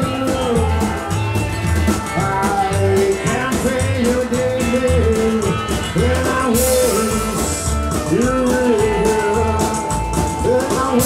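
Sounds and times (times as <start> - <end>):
harmonica lead with bent notes: 0.0 - 11.0
rock and roll band playing: 0.0 - 11.0.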